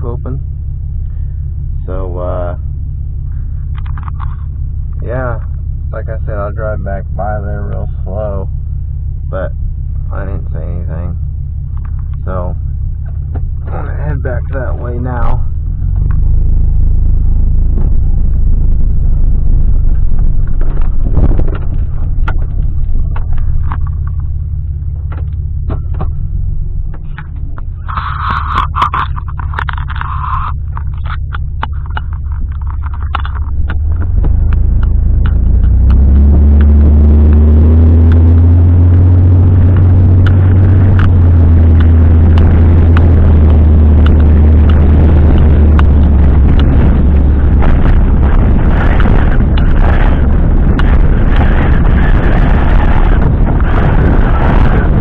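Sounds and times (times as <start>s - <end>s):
road and wind noise: 0.0s - 55.0s
truck engine hum: 0.0s - 55.0s.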